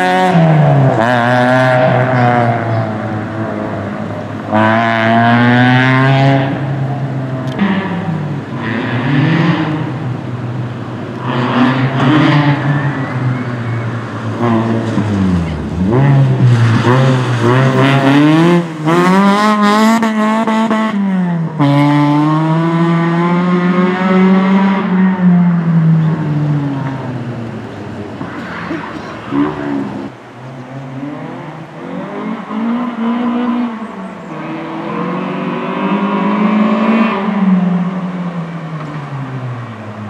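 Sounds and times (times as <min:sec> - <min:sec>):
rally car engine revving: 0:00.0 - 0:40.0.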